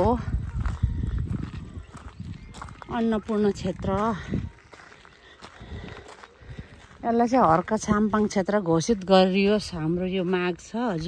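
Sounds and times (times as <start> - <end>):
footsteps crunching on gravel: 0.0 - 11.0.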